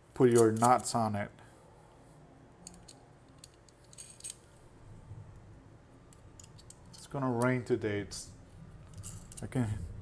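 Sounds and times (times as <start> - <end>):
nuts clicking on metal: 0.3 - 1.0, 2.6 - 4.5, 6.1 - 7.6, 8.8 - 9.6.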